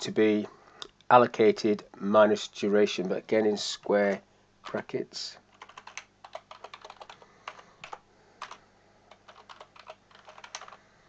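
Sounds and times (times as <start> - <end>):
keyboard typing clicks: 5.6 - 10.8.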